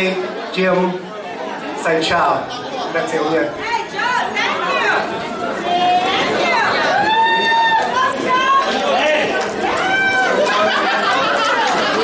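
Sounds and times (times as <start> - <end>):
chatter: 0.0 - 12.0.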